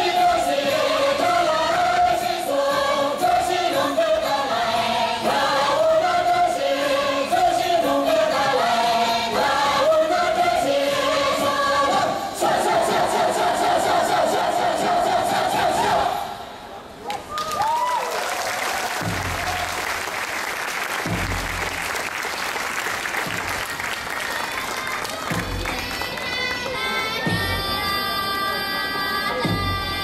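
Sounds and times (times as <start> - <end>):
group singing folk melody: 0.0 - 16.6
steady beat: 19.0 - 20.0, 21.0 - 22.2, 23.1 - 23.9, 25.2 - 26.0.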